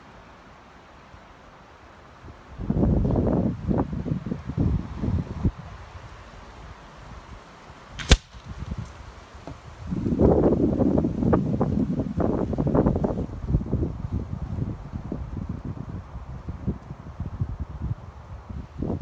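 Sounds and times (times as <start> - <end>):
wind buffeting microphone: 2.6 - 19.0
pellet striking paper target: 8.0 - 8.5.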